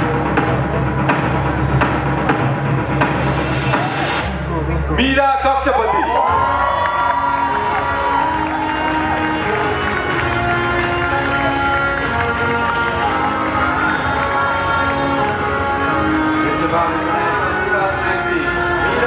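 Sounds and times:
loud music with held notes: 0.0s - 4.9s, 6.0s - 19.0s
crowd cheering: 5.6s - 19.0s.

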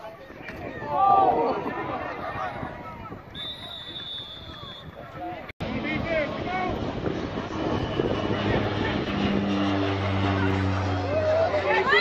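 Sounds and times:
field noise: 3.3s - 12.0s
low engine drone: 5.6s - 12.0s.

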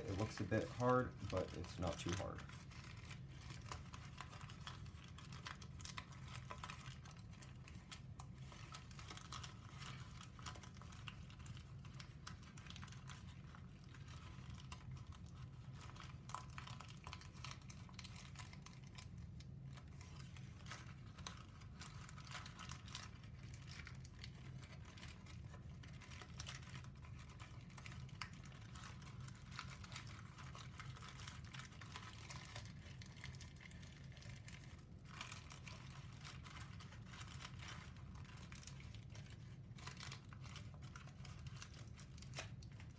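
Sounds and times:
low steady hum: 0.0s - 42.9s
paper crinkling and rustling: 0.0s - 42.9s.

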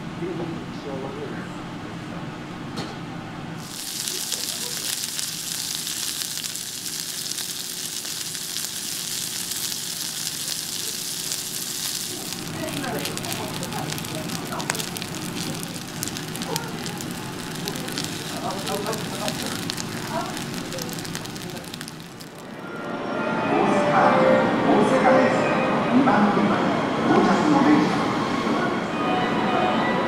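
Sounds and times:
meat sizzling in a grill pan: 3.6s - 22.5s
rice frying with crackling: 3.6s - 22.6s.

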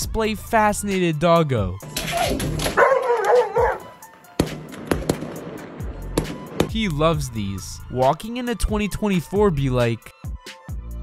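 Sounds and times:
background music: 0.0s - 11.0s
dog whining excitedly: 1.9s - 3.9s
fireworks popping: 4.4s - 6.8s.

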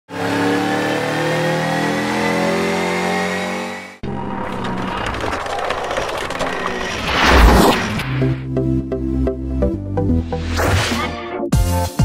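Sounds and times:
turbocharged engine revving high: 0.1s - 8.0s.

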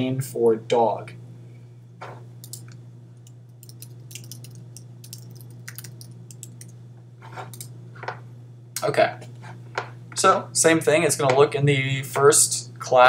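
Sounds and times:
low steady hum: 0.0s - 13.0s
keyboard typing clicks: 3.6s - 6.7s.

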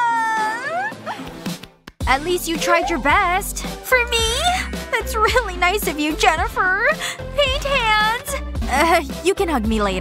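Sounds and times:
woman wailing: 0.0s - 1.3s, 2.6s - 3.4s
woman whimpering: 0.0s - 1.3s, 2.6s - 3.4s.

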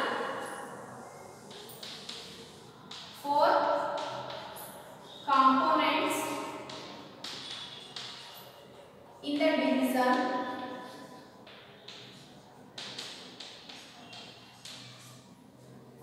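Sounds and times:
woman speaking: 0.0s - 0.4s, 3.2s - 3.7s, 5.3s - 6.4s, 9.2s - 10.5s
chalk tapping on blackboard: 1.5s - 3.2s, 4.0s - 4.7s, 6.5s - 8.4s, 11.4s - 15.0s.

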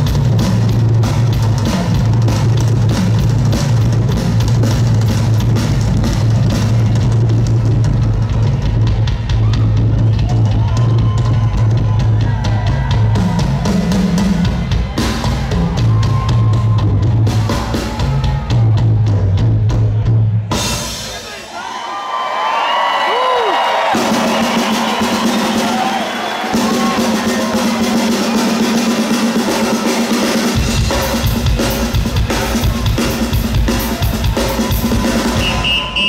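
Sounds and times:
drum solo on drum kit: 0.0s - 21.5s, 23.5s - 36.0s
crowd cheering and whooping: 7.9s - 19.3s, 21.2s - 28.8s, 32.4s - 36.0s.

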